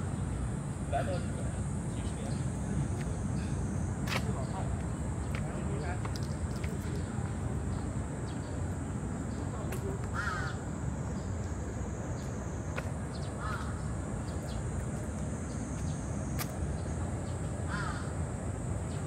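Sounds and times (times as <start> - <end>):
constant high hiss: 0.0 - 19.0
outdoor background noise: 0.0 - 19.0
crow cawing: 10.1 - 10.6, 13.4 - 13.8, 17.7 - 18.1.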